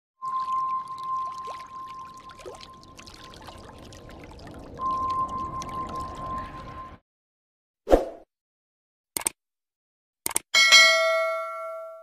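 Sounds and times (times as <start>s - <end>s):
steady high tone: 0.2s - 7.0s
scattered clicks: 9.2s - 9.4s, 10.2s - 10.5s.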